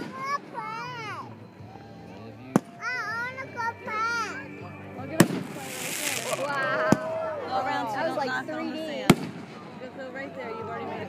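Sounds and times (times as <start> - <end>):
firework hiss: 5.2 - 6.6
firework bangs: 5.2 - 7.1, 9.1 - 9.6.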